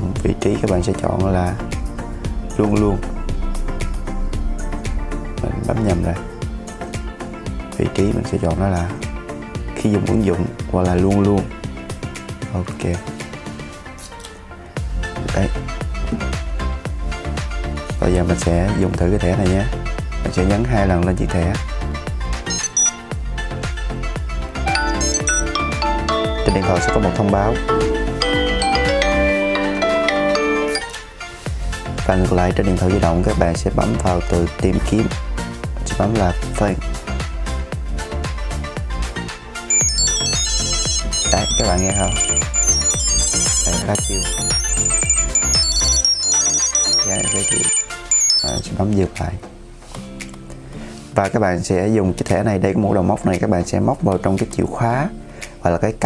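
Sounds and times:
background music: 0.0s - 56.0s
phone ringtone electronic notes: 22.5s - 23.0s, 24.6s - 31.0s, 39.7s - 48.7s.

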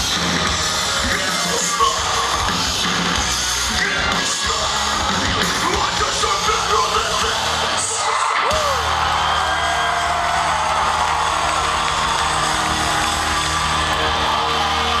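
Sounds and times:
crowd yelling and whooping: 0.0s - 15.0s
loud rock band playing: 0.0s - 15.0s.

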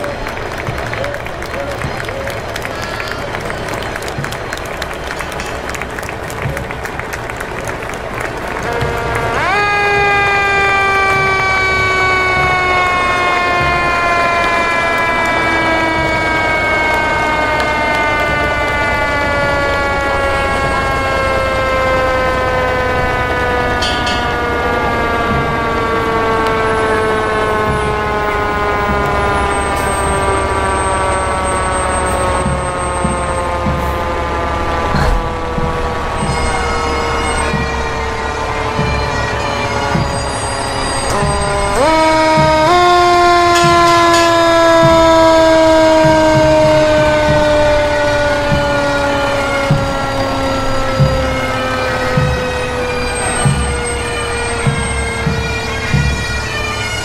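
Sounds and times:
mechanical siren wailing: 0.0s - 57.0s
truck engine rumble: 0.0s - 57.0s.

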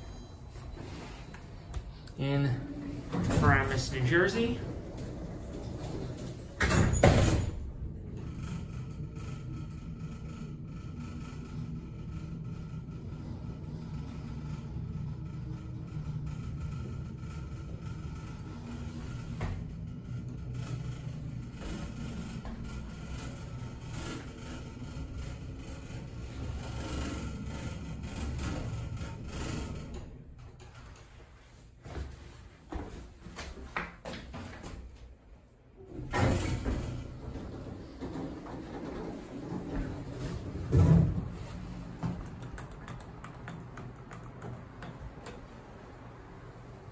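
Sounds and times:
elevator doors clacking: 0.0s - 31.2s, 35.8s - 46.9s
elevator running hum: 0.0s - 46.9s
elevator doors shutting thump: 35.9s - 45.9s.

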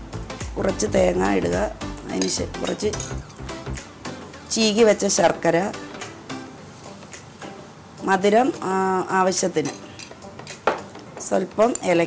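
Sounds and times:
metal spoon clinking bowl: 2.2s - 3.2s.

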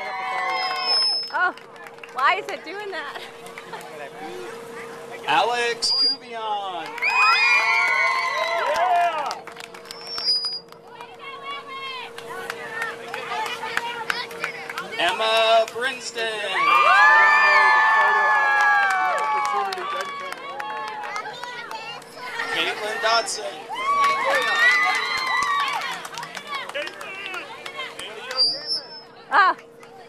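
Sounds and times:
hand claps: 0.4s - 4.0s, 7.8s - 11.2s, 12.1s - 16.0s, 18.5s - 22.2s, 24.0s - 28.5s
girls cheering and screaming: 7.0s - 9.1s, 16.6s - 21.0s, 23.7s - 26.0s.

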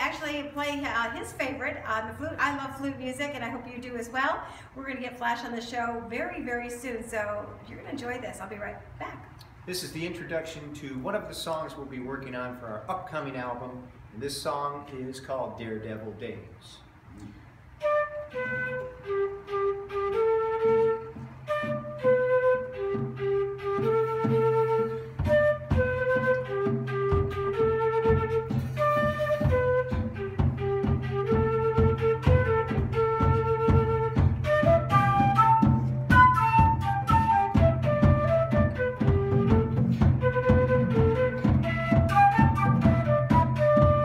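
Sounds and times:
flute melody: 17.8s - 44.0s
drum beat: 23.8s - 44.0s.

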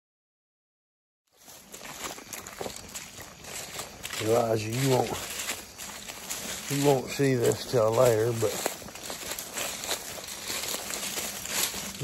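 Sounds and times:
footsteps in vegetation: 1.3s - 12.0s
rustling and crunching leaves: 1.3s - 12.0s
twigs crackling: 1.3s - 12.0s.

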